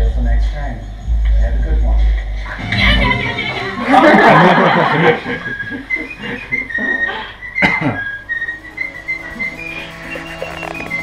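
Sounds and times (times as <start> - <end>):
whistled tune: 4.5 - 11.0.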